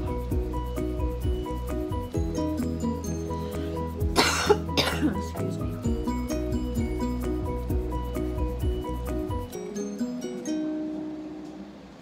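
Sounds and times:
background music: 0.0s - 11.8s
person coughing: 4.2s - 5.4s.

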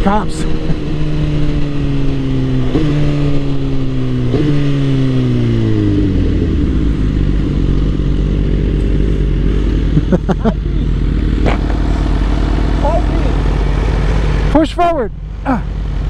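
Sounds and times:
motorcycle engine braking: 10.7s - 14.6s.

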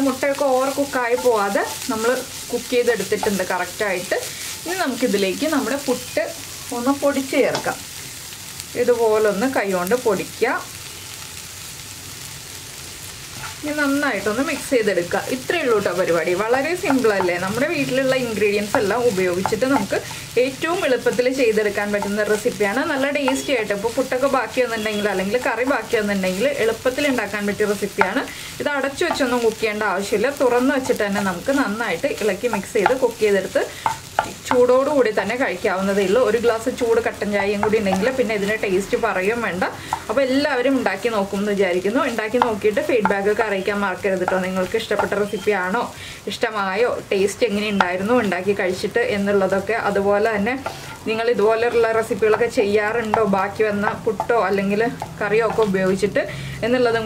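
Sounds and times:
woman talking: 0.0s - 7.8s, 8.8s - 10.7s, 13.6s - 57.0s
food frying: 0.0s - 57.0s
light sizzling: 0.0s - 57.0s
spatula scraping a frying pan: 0.3s - 3.4s, 13.2s - 13.7s, 18.8s - 20.4s, 50.6s - 51.0s
wooden spatula scraping frying pan: 13.3s - 14.8s, 16.8s - 20.4s, 50.6s - 51.0s.

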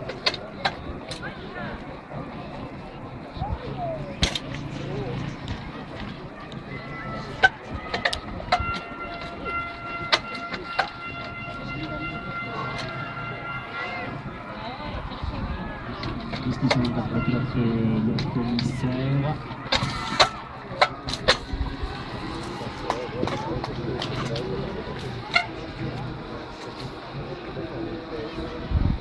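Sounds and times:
murmur of voices: 0.0s - 29.0s.

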